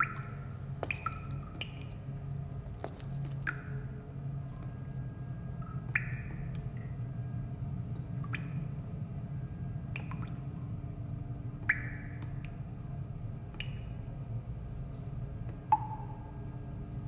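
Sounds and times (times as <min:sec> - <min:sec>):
water dripping: 0:00.0 - 0:04.9, 0:05.6 - 0:07.1, 0:07.8 - 0:09.0, 0:09.8 - 0:10.8, 0:11.5 - 0:16.5
low hum: 0:00.0 - 0:17.0.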